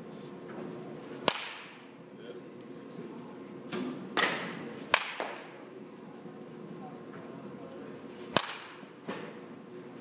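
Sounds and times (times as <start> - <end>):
baseball bat cracking a ball: 1.2 - 1.8, 4.2 - 5.5, 8.3 - 9.4.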